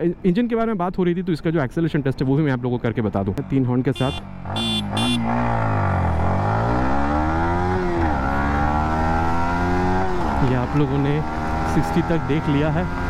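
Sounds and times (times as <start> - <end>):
horn beeps: 4.0 - 5.6
motorcycle engine revving: 4.0 - 13.0.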